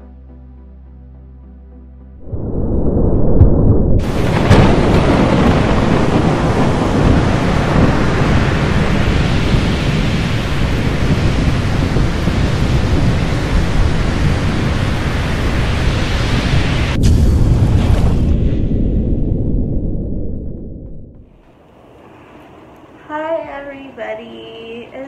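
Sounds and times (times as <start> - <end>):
low thunder rumble: 2.2 - 21.4
rain-like hiss: 4.0 - 17.3.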